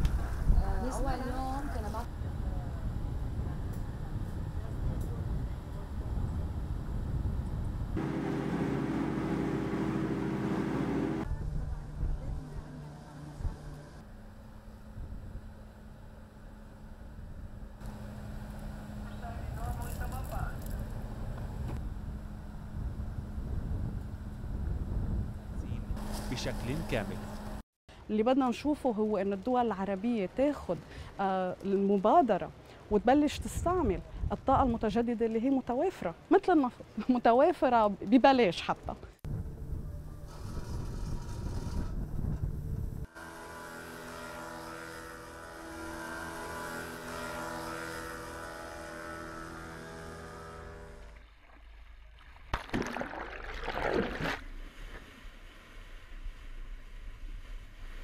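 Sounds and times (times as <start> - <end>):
wind buffeting microphone: 0.0 - 8.1, 20.1 - 26.1, 39.3 - 43.1
ship engine rumbling: 7.7 - 27.6.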